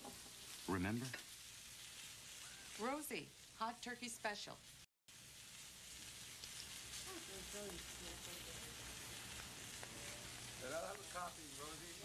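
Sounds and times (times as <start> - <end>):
food sizzling on grill: 0.0 - 12.0.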